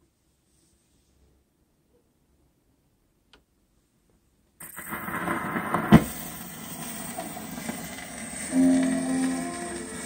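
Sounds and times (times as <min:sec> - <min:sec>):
record surface hiss and crackle: 0:00.0 - 0:10.0.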